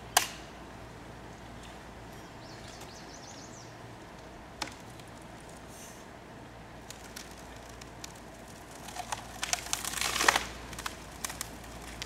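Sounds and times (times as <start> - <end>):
tree trunk cracking and splintering: 6.8 - 12.0.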